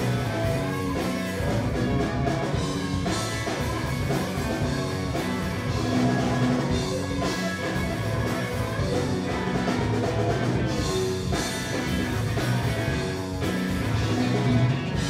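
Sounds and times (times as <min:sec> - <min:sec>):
blues-rock band playing: 0:00.0 - 0:15.0.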